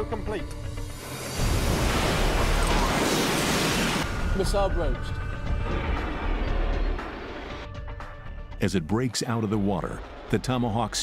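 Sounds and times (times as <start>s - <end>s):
rocket booster rushing roar: 0.8s - 4.2s.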